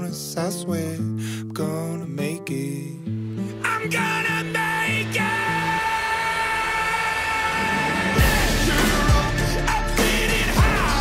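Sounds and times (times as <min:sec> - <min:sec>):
low bass notes: 0:08.1 - 0:11.0.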